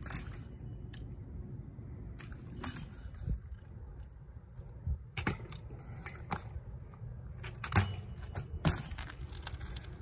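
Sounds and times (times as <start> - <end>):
metallic rattles of bike parts: 0.0 - 10.0.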